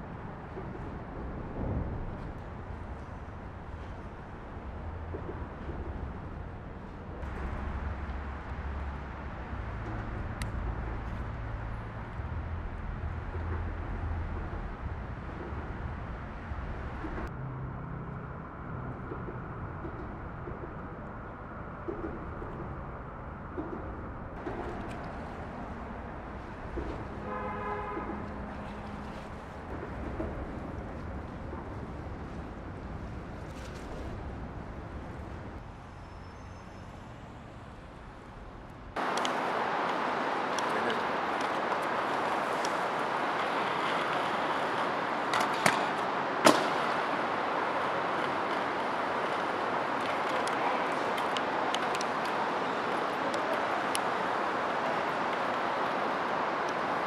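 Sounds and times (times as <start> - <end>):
city traffic rumble: 0.0 - 57.0
car horn: 27.2 - 28.4.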